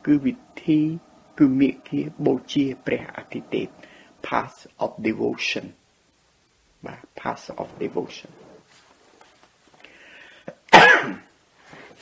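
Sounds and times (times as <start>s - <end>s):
person clearing throat: 10.5s - 11.3s.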